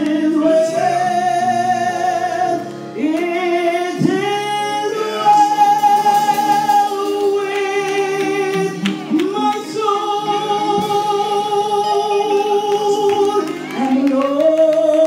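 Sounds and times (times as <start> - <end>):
woman singing gospel song: 0.0 - 15.0.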